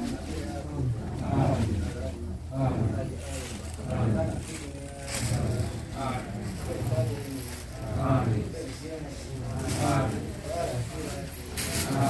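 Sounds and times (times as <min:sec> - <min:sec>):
chatter of people talking: 0:00.0 - 0:12.0
steady low hum: 0:00.0 - 0:12.0.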